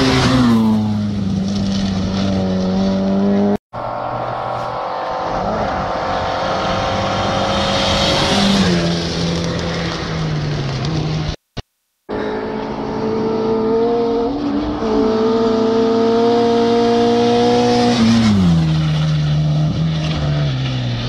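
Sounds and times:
rally car driving away: 0.0s - 11.4s, 12.1s - 21.0s
rally car engine at full throttle: 0.0s - 11.4s, 12.1s - 21.0s.

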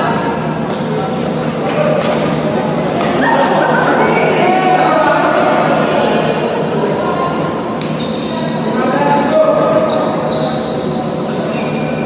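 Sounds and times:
din of indoor hall: 0.0s - 12.0s
shoes squeaking on court floor: 7.8s - 12.0s.

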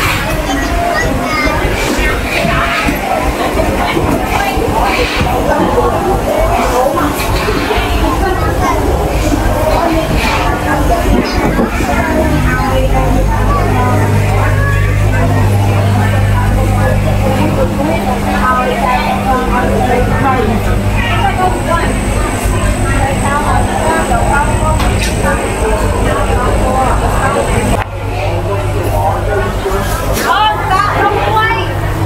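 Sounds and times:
low machine hum: 0.0s - 32.0s
market crowd chatter: 0.0s - 32.0s.

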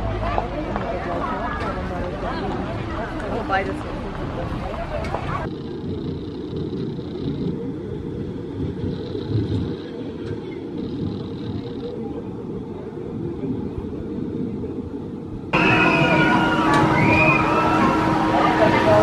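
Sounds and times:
roller coaster rumbling on track: 0.0s - 19.0s.

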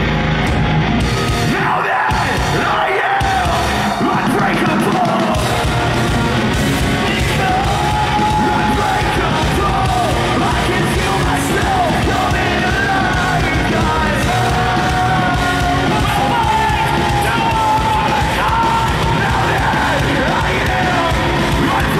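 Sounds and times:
live rock band: 0.0s - 21.9s
person singing and yelling: 1.4s - 5.7s, 7.0s - 21.9s.

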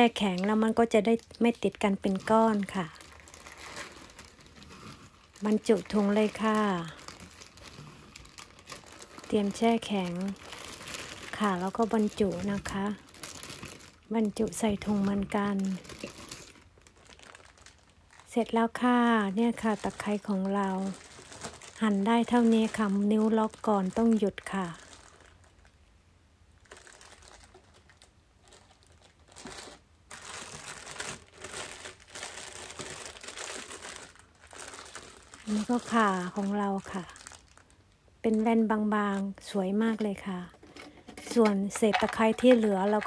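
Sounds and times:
plastic bag crinkling: 0.0s - 25.8s, 26.6s - 43.0s.

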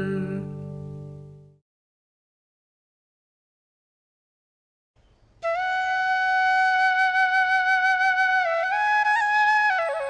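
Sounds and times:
flute playing held notes: 5.4s - 10.0s.

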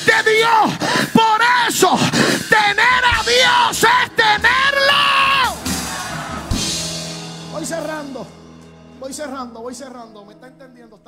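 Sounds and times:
man yelling through a microphone: 0.0s - 5.6s
church keyboard music: 0.0s - 11.0s.

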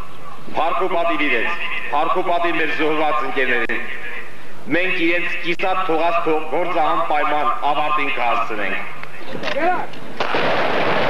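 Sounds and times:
loud dense continuous noise: 0.0s - 11.0s
man speaking into a microphone: 0.5s - 9.4s.

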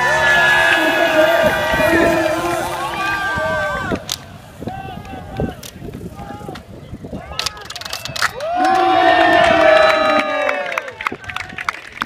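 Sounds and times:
team cheering: 0.0s - 12.0s.

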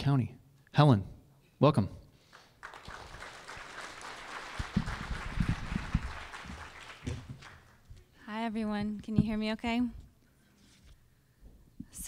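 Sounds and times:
audience applauding: 2.3s - 7.9s.

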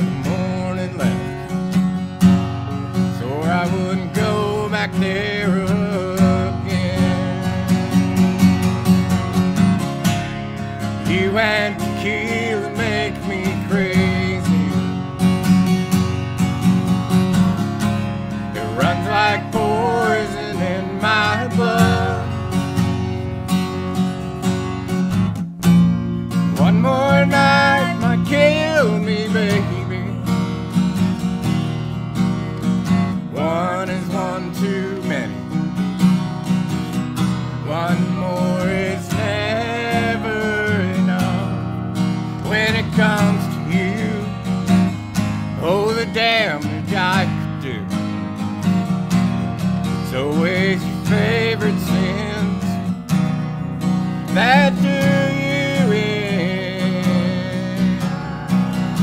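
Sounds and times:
acoustic guitar strumming: 0.0s - 59.0s.

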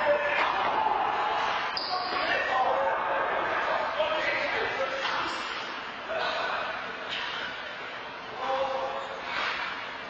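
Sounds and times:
players' voices: 0.0s - 9.6s.

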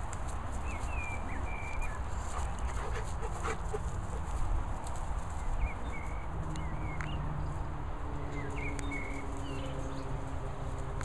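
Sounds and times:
dogs scuffling on grass: 0.0s - 11.0s.

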